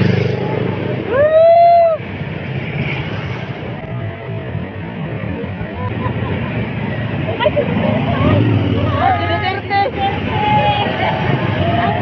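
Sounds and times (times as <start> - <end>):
motorcycle engines rumbling: 0.0 - 12.0
people calling out: 8.0 - 12.0.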